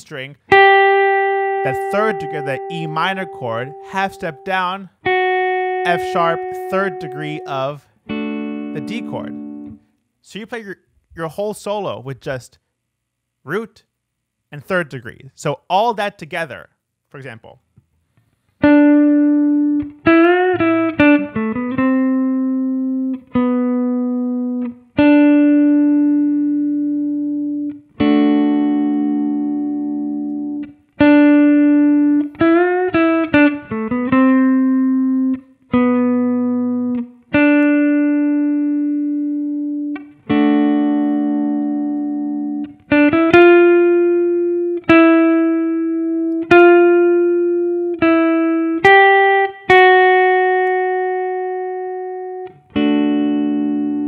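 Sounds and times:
electric guitar solo: 0:00.0 - 0:10.0, 0:18.6 - 0:54.0.

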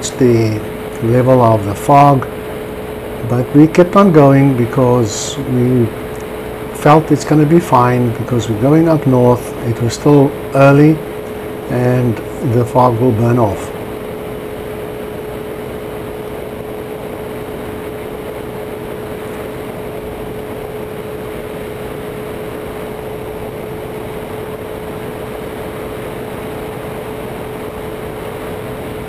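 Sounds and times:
aircraft engine droning: 0:00.0 - 0:29.0.

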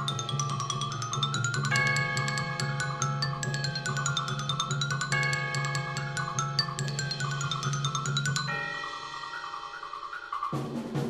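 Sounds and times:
sustained ringing chords: 0:00.0 - 0:09.8
glockenspiel run: 0:00.0 - 0:11.0.

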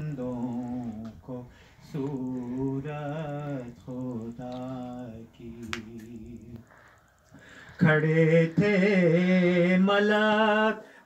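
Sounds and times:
man chanting devotional verse: 0:00.0 - 0:06.8, 0:07.7 - 0:11.0
sharp click: 0:04.0 - 0:06.7.

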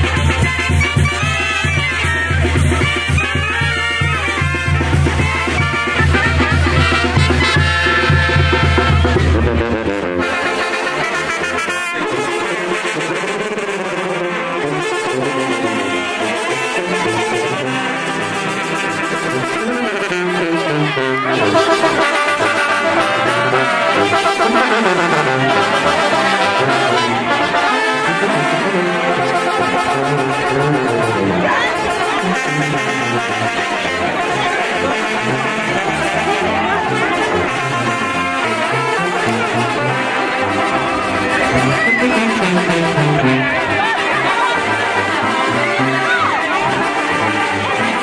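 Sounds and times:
brass band playing: 0:00.0 - 0:48.0.

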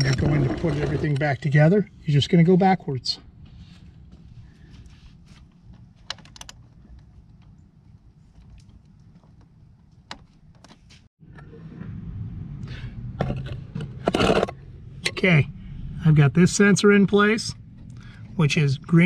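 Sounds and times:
wiring clicks and taps on metal: 0:06.0 - 0:07.6
low background rumble: 0:11.2 - 0:19.0.

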